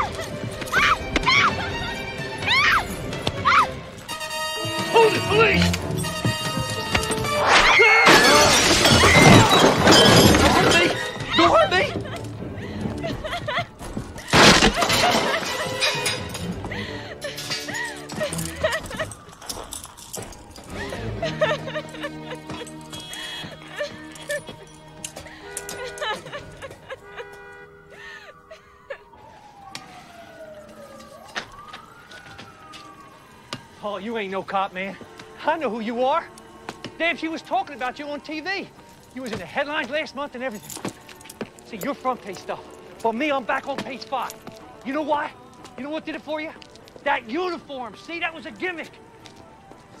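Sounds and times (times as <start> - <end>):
people shouting and screaming: 0.0 - 1.8, 2.4 - 3.8, 7.4 - 9.9
film score music: 0.0 - 8.0, 10.7 - 14.4, 15.0 - 29.9
police siren wailing: 0.0 - 40.8
glass shattering crash: 7.2 - 11.5, 14.2 - 16.6.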